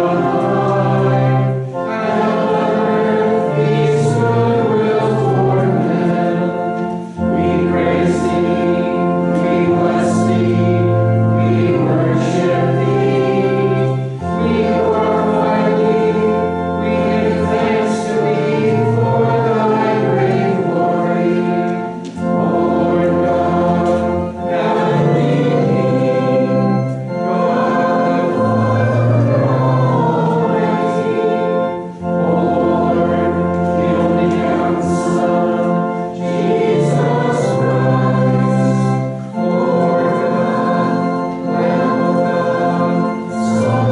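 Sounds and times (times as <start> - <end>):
congregation singing a hymn: 0.0 - 43.9
organ accompaniment: 0.0 - 43.9.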